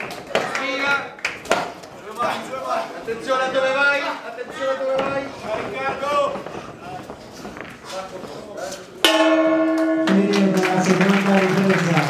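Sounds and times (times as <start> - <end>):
boxing ring bell ringing: 9.0 - 11.2.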